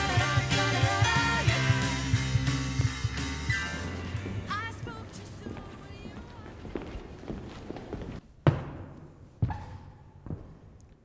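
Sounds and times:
boot footsteps on concrete: 4.1s - 10.8s.

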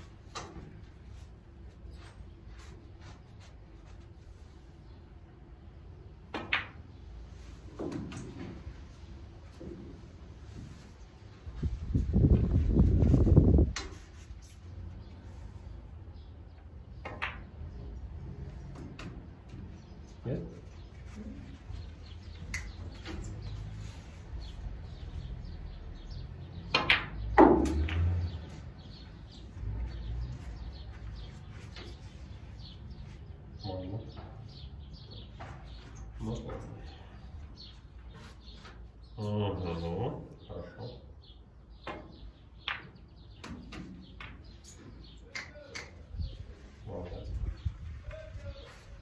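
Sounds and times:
snooker balls colliding: 26.7s - 28.4s.

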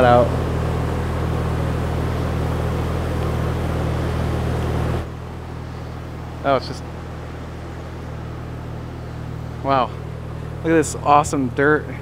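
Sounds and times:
faint background hum: 0.0s - 12.0s
low mechanical hum: 0.0s - 12.0s.

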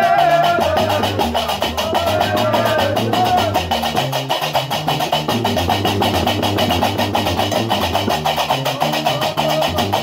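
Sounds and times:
plucked bass lute: 0.0s - 10.0s.

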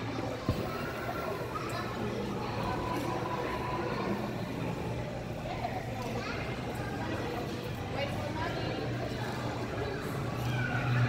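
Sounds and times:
distant indistinct voices: 0.0s - 11.0s.

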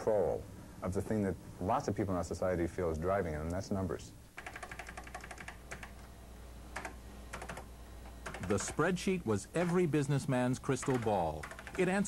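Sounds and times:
steady low hum: 0.0s - 12.0s
typing on computer keyboard: 4.4s - 6.0s, 6.8s - 8.8s, 10.7s - 12.0s.

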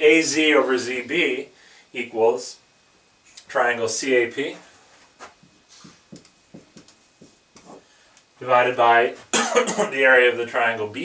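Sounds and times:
marker writing on a whiteboard: 5.2s - 7.9s.

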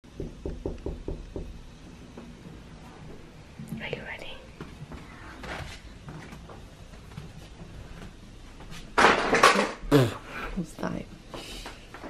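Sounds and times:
person whispering: 3.7s - 4.5s.

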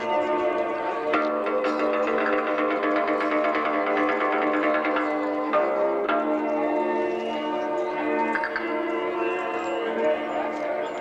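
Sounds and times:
plucked string instrument music: 0.0s - 11.0s.

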